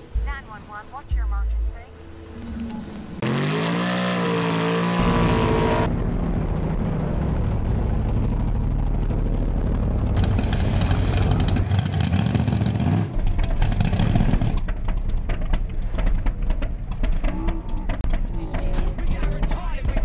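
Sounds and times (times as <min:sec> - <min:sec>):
harsh crackling engine: 0:02.3 - 0:20.0
drag-racing engine revving: 0:03.2 - 0:05.9, 0:09.6 - 0:14.6
engine at high revs in burnout: 0:03.2 - 0:05.9, 0:10.2 - 0:14.6.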